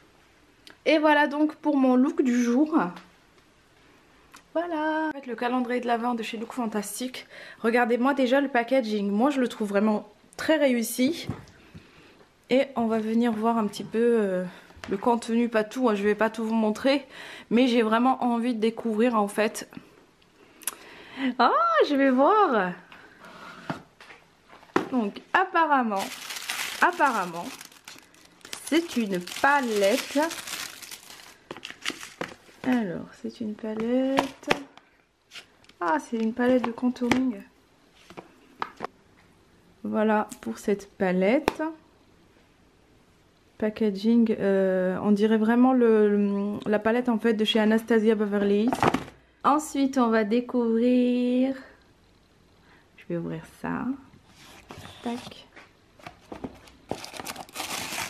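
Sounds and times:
tissue paper crinkling: 25.9s - 32.6s, 56.9s - 58.0s.

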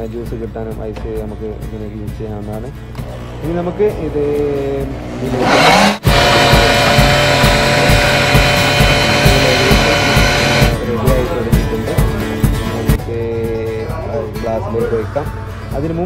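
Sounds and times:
blender motor running: 5.0s - 10.8s.

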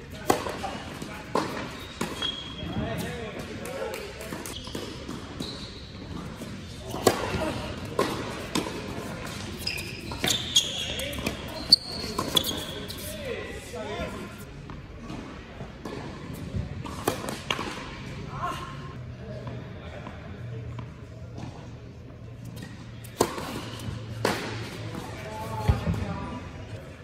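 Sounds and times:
sneakers squeaking on court: 0.3s - 3.2s, 4.4s - 13.2s
tennis ball bouncing: 6.2s - 10.3s
racket striking tennis ball: 6.9s - 9.6s.

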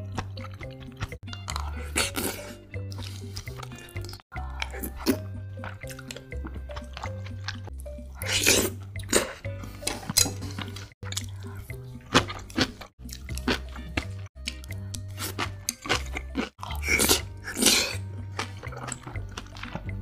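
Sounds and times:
background music with bass line: 0.0s - 20.0s
wet chewing and smacking: 0.0s - 20.0s.

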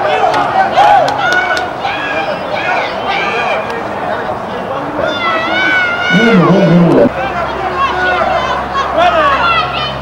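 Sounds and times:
high-pitched cry: 6.1s - 7.1s.

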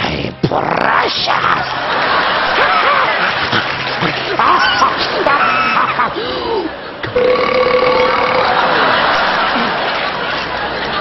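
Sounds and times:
man belching: 7.2s - 8.6s.

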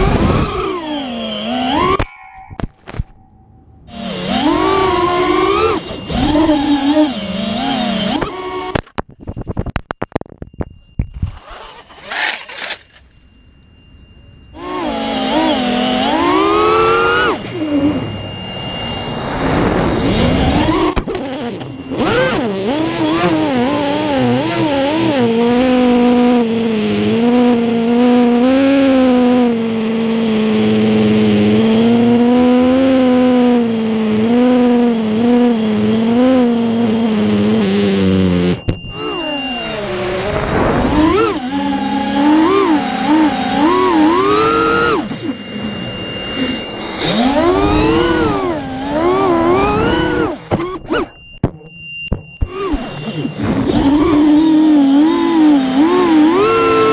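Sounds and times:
drone motors whining: 0.0s - 56.9s.

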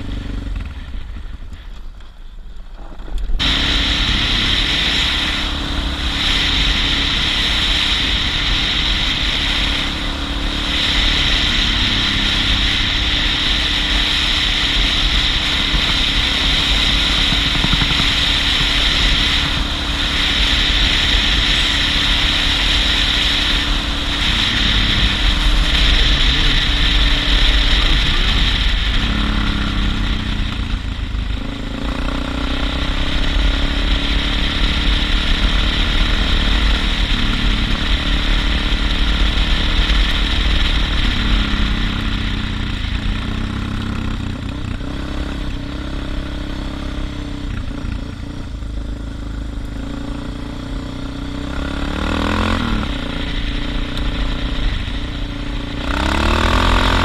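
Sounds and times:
motorcycle engine running: 0.0s - 57.0s
wind noise: 2.7s - 43.8s.

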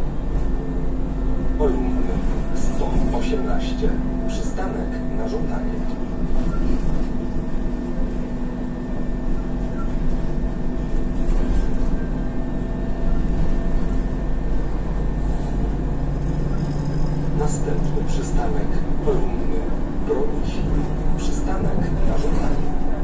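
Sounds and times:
diesel engine drone: 0.0s - 23.0s
road rumble: 0.0s - 23.0s.

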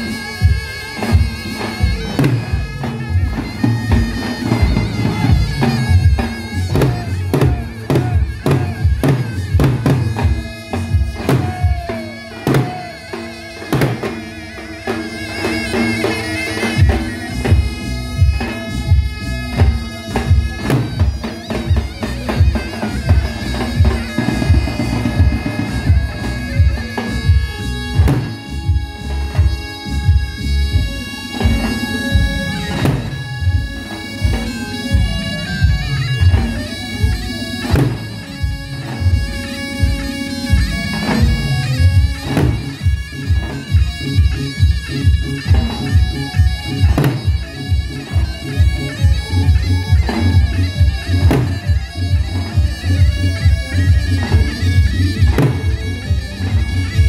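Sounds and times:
bass drums beating: 0.0s - 12.9s, 16.8s - 57.0s
shrill reed wind instrument: 0.0s - 57.0s.

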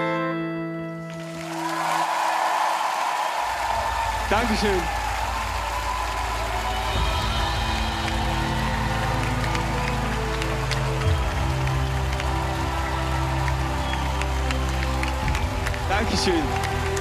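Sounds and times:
audience applause: 1.0s - 17.0s.

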